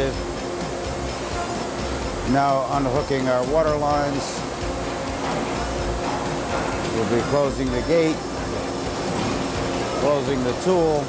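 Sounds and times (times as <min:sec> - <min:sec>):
machine humming and rumbling: 0:00.0 - 0:11.0.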